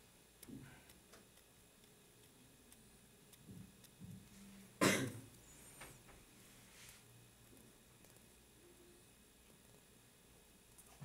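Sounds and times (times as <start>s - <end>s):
faint scattered ticks: 0.3s - 11.0s
person coughing: 4.8s - 5.3s.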